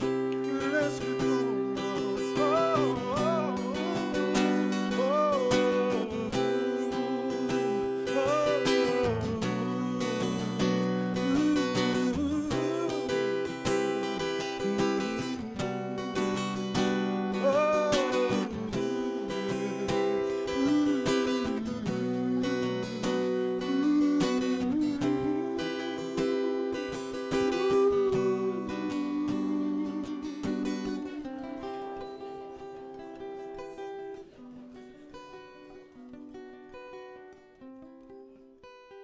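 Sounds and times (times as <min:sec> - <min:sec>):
person singing wordless phrases: 0:00.0 - 0:34.5
acoustic guitar chords: 0:00.0 - 0:39.0.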